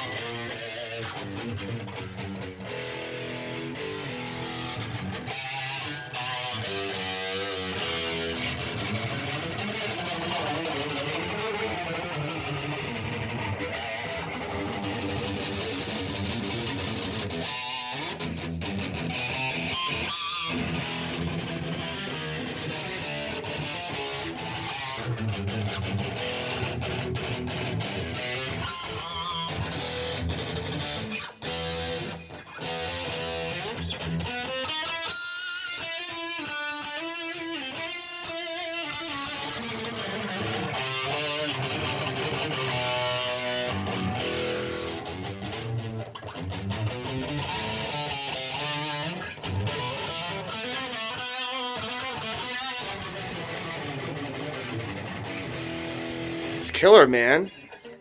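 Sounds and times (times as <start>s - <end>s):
electric guitar through amplifier: 0.0s - 58.0s.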